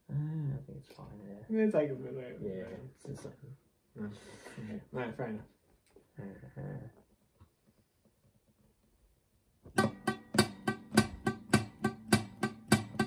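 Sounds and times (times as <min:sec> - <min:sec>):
acoustic guitar strumming: 0:09.7 - 0:13.0.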